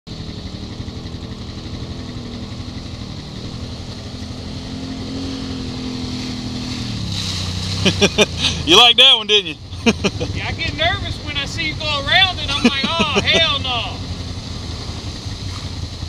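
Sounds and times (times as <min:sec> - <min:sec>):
side-by-side vehicle engine running: 0:00.0 - 0:16.0
short laugh: 0:07.8 - 0:08.6, 0:09.7 - 0:10.4.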